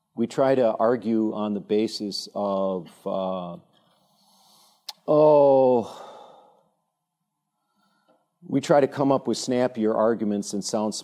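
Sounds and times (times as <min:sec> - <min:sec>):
man sighing: 0:05.5 - 0:06.6.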